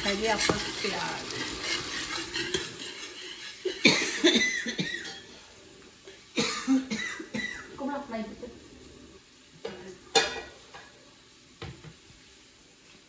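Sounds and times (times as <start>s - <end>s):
kitchen utensils clattering: 0.0s - 5.5s, 9.7s - 11.0s
person coughing: 3.7s - 5.2s, 6.4s - 7.8s.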